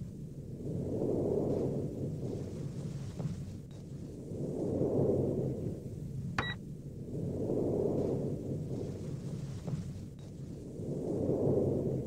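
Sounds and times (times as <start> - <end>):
low spaceship hum: 0.0 - 12.0
rumble: 0.0 - 12.0.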